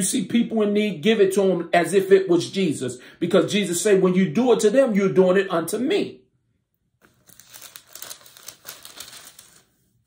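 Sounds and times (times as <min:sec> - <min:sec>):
person speaking: 0:00.0 - 0:06.2
paper crinkling and rustling: 0:07.0 - 0:10.0.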